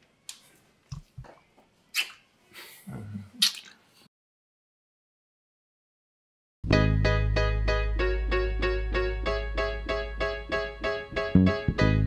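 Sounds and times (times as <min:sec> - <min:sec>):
wet lip smacks: 0:01.9 - 0:02.3, 0:03.4 - 0:03.8
breaths: 0:02.5 - 0:03.1.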